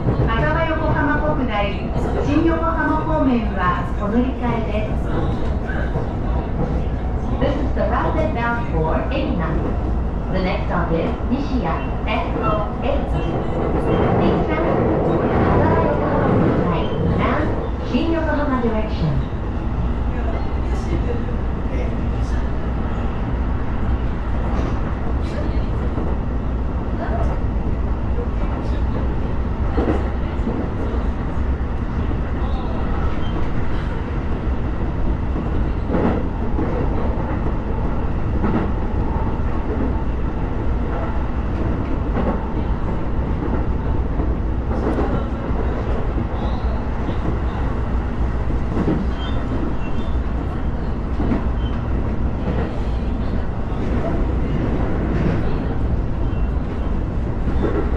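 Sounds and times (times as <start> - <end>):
train rumble from inside carriage: 0.0 - 57.9.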